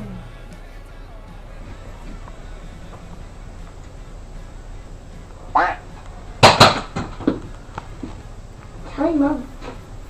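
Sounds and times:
loud sharp clacks: 6.4 - 7.4.

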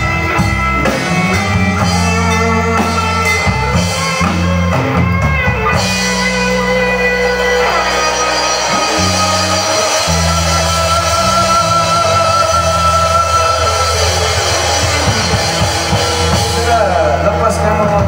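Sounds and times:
bass line: 0.0 - 18.0
drum kit: 0.0 - 18.0
electric guitar: 0.0 - 18.0.

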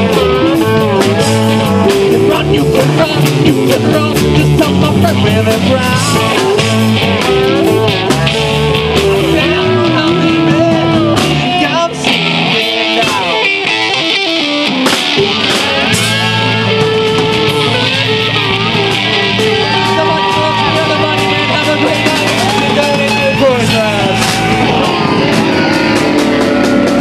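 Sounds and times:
guitar with bent sliding notes: 0.0 - 27.0
live rock band playing: 0.0 - 27.0.

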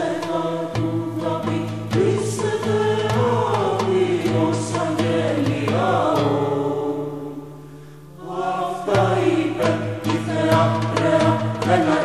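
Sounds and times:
voices chanting a melody: 0.0 - 12.0.

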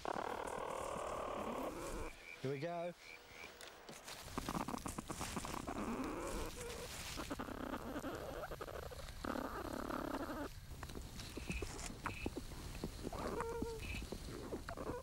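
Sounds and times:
rustling and scratching in dry leaves: 0.0 - 2.6, 3.3 - 15.0.

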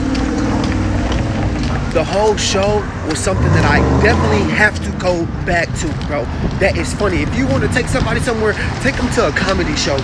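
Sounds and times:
street noise: 0.0 - 10.0
vehicle engine humming: 0.0 - 10.0.

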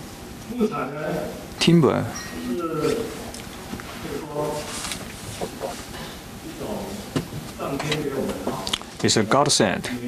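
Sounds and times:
man speaking into microphone: 6.5 - 10.0.

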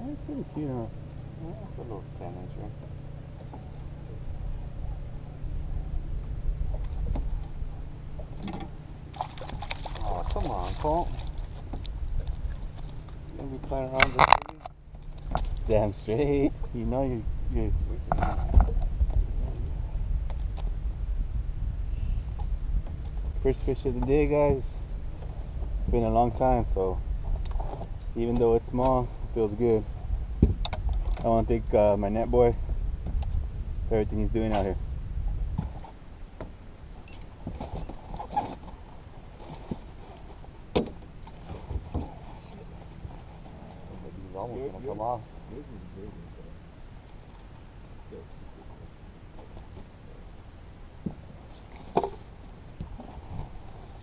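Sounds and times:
low uneven rumble: 0.0 - 54.0
clicks and knocks from boat: 8.2 - 15.7, 18.0 - 19.2, 37.2 - 38.8, 39.4 - 43.6, 51.0 - 54.0
wind buffeting microphone: 15.3 - 35.9
knocks on boat deck: 30.4 - 30.8, 40.7 - 41.0.

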